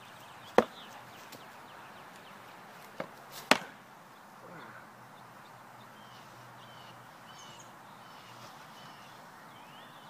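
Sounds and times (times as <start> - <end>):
cardboard smack on person: 3.4 - 3.7.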